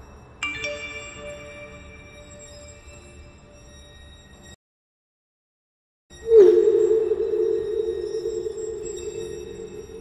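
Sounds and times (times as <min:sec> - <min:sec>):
low sustained drone: 0:06.2 - 0:10.0.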